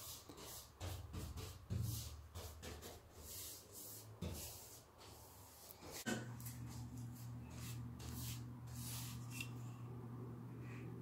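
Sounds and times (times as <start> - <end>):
paintbrush swishing on wood: 0.0 - 9.6.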